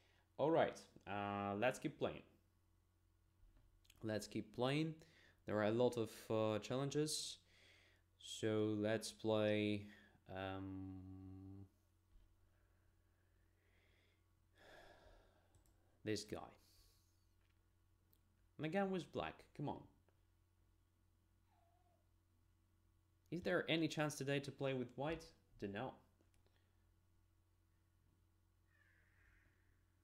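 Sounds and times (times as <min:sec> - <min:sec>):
faint mouse clicks: 0:15.5 - 0:15.8.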